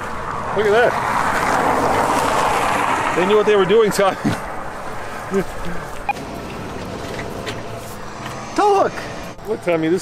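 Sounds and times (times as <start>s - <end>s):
passing vehicle tyre noise: 0.0s - 5.4s, 6.0s - 10.0s.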